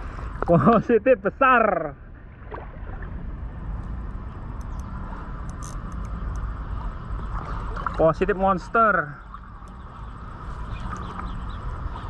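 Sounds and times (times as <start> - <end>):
fishing reel whirring: 4.6 - 6.4.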